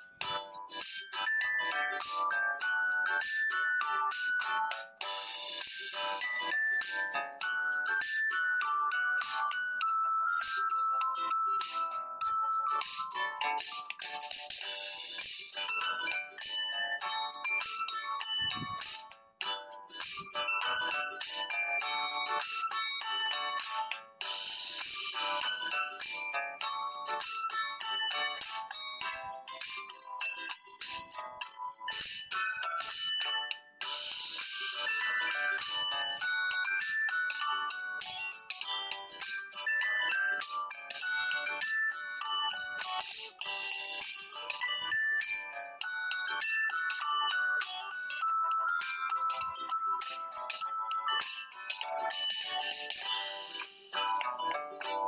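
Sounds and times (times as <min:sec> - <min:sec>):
quick bright instrumental tune: 0:00.0 - 0:55.0.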